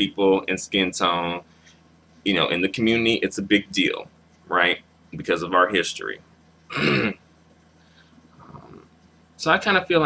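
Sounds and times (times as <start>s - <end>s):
faint low murmur: 0.0s - 10.0s
low electrical hum: 0.0s - 10.0s
man clearing his throat: 6.7s - 7.2s.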